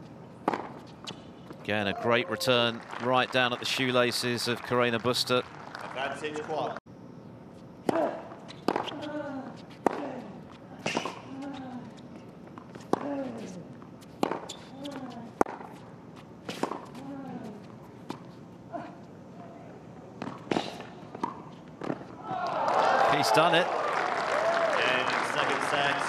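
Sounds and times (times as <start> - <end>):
racket hitting tennis ball: 0.4 - 1.2, 7.8 - 11.2, 14.1 - 15.8, 16.4 - 17.0.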